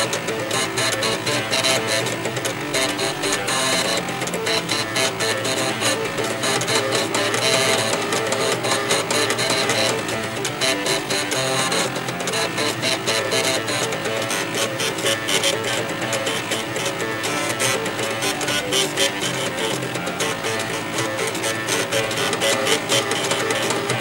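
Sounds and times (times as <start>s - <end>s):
floppy drive motors buzzing a tune: 0.0s - 24.0s.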